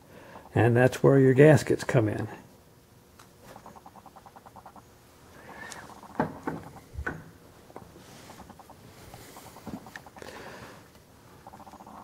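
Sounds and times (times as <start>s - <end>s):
sharp knocks: 6.2s - 7.3s.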